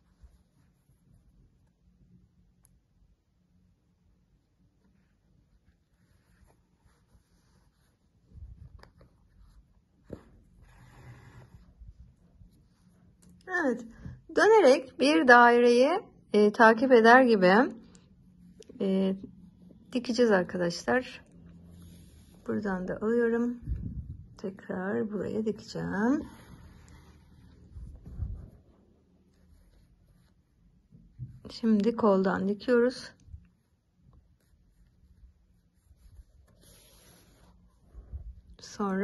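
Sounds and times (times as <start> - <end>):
hands rustling yarn: 4.4 - 13.4, 21.4 - 38.9
fabric rubbing under fingers: 25.3 - 32.2, 34.2 - 38.6.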